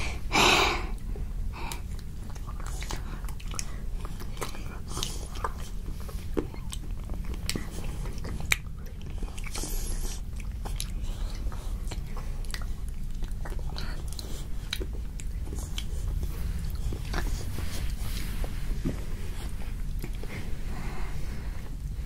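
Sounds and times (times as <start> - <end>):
chewing: 1.0 - 22.0.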